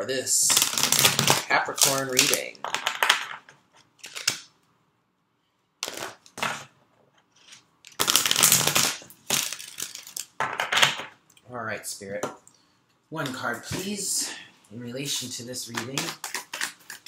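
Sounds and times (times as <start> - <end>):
cards being shuffled: 4.0 - 4.5, 5.8 - 6.6, 7.4 - 11.1, 15.6 - 17.0.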